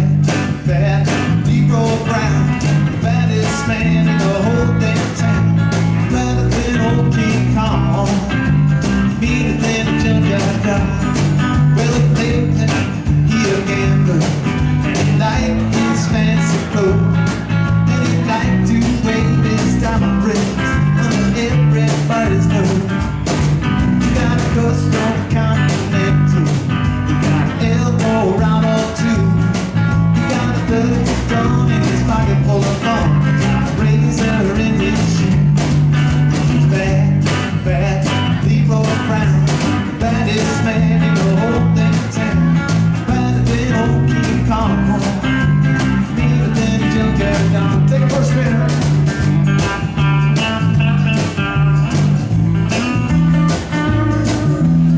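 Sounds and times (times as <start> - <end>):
live rock band playing: 0.0 - 54.9.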